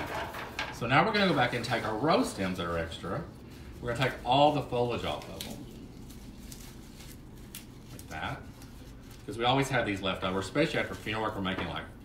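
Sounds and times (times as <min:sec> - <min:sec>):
leaves rustling and snapping: 0:01.1 - 0:11.9.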